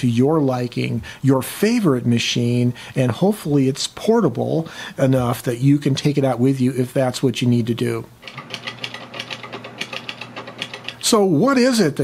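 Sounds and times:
typewriter keys clacking: 0:08.2 - 0:11.1.

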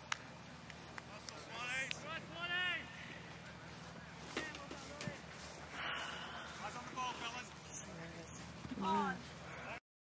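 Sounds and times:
distant voices of players calling: 0:00.0 - 0:09.8
steady low hum: 0:00.0 - 0:09.8.

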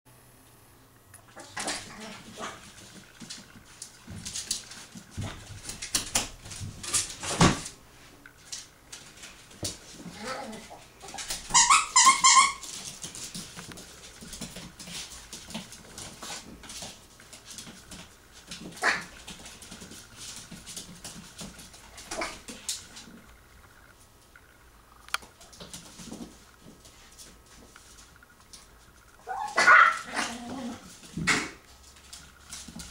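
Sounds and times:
puppy yipping: 0:11.1 - 0:12.6.

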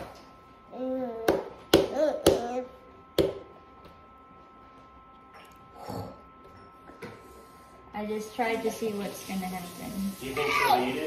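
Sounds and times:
baby voice: 0:10.4 - 0:11.0.

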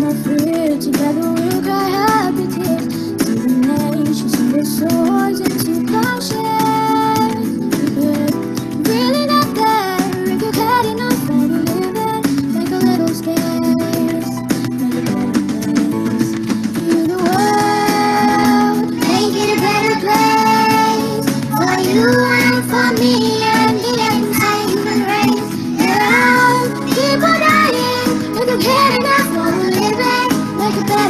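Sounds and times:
acoustic guitar: 0:00.0 - 0:31.0
woman singing: 0:00.0 - 0:31.0
children singing: 0:17.1 - 0:31.0.

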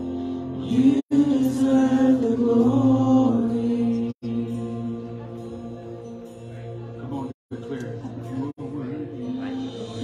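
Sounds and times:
musical backing: 0:00.0 - 0:10.0
man and woman singing worship: 0:00.6 - 0:05.1.

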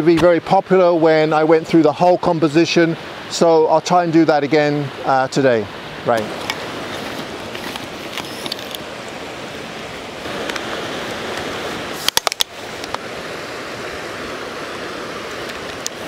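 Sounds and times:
creek and small waterfall rushing: 0:00.0 - 0:16.0
tripod clicks: 0:06.1 - 0:08.9, 0:10.4 - 0:13.0.

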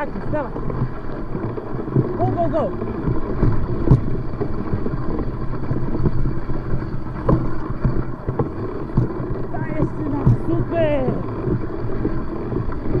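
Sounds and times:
bike tyres rumbling on snow: 0:00.0 - 0:13.0
wind on microphone: 0:00.0 - 0:13.0
bike knocking over bumps: 0:03.1 - 0:04.1.

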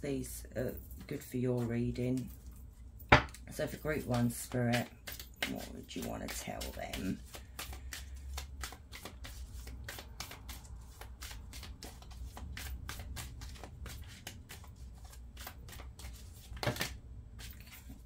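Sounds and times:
cards being shuffled: 0:03.7 - 0:18.0.

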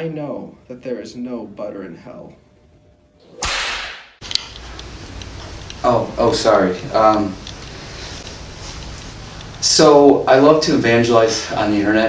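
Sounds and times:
low room hum: 0:00.0 - 0:03.4, 0:04.2 - 0:12.0
whip crack sound effect: 0:03.3 - 0:04.2.

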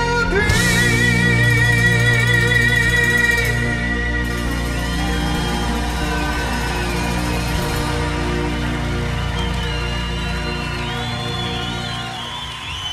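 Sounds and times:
steady bass guitar: 0:00.0 - 0:12.3.

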